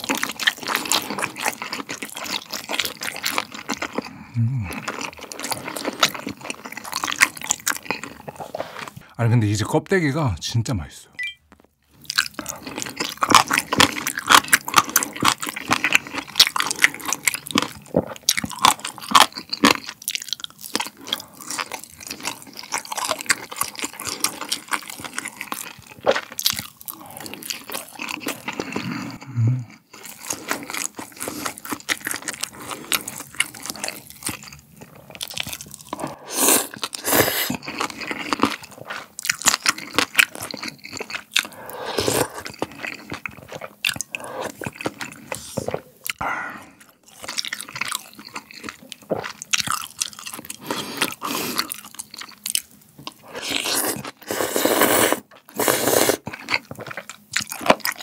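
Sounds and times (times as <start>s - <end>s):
chewing and crunching food: 0.0s - 9.2s, 11.5s - 58.0s
slurping broth: 35.9s - 38.0s, 41.4s - 46.8s, 53.1s - 56.4s.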